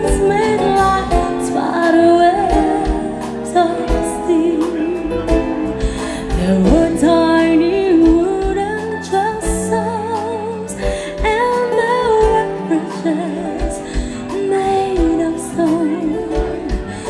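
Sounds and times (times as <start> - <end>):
drum kit: 0.0 - 17.0
electric bass: 0.0 - 17.0
woman singing: 0.0 - 17.0.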